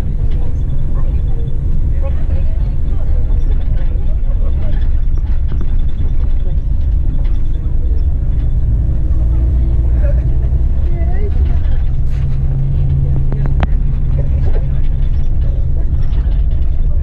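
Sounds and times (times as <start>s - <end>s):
coach engine rumble: 0.0s - 17.0s
road noise: 0.0s - 17.0s.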